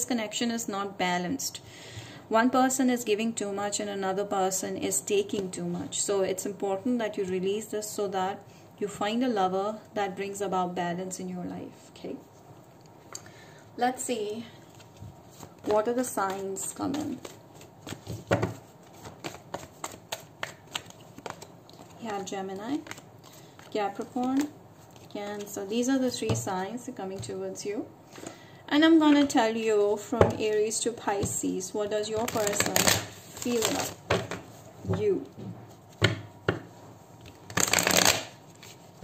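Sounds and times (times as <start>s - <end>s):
card rustle: 14.6s - 26.3s, 32.2s - 34.5s, 37.3s - 38.9s
cards being shuffled: 14.6s - 26.4s, 32.2s - 34.6s, 37.2s - 39.0s
sharp taps of cards: 16.3s - 21.4s.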